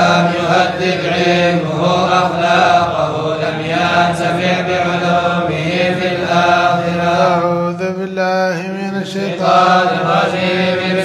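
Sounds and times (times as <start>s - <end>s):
person chanting unaccompanied: 0.0s - 11.0s.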